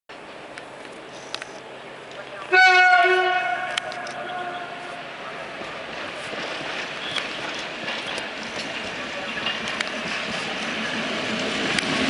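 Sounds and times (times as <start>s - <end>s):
train rumbling on rails: 0.1s - 12.0s
locomotive air horn blast: 2.5s - 4.9s.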